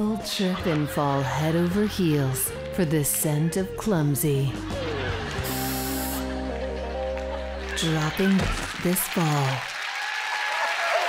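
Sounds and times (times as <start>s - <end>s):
music holding sustained chord: 4.2s - 7.8s
perfume atomizer spray hiss: 5.4s - 6.3s.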